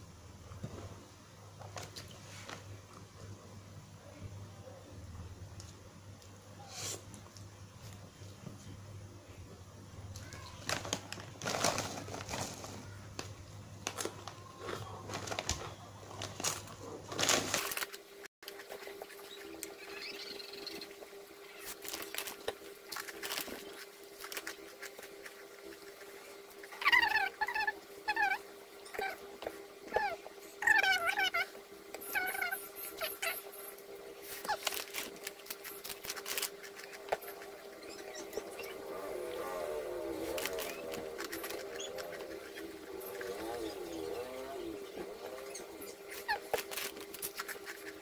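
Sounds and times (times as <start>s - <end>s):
plastic snack bag crackling: 10.2s - 18.6s, 21.6s - 26.2s, 34.2s - 37.8s, 40.1s - 44.4s, 45.3s - 48.0s.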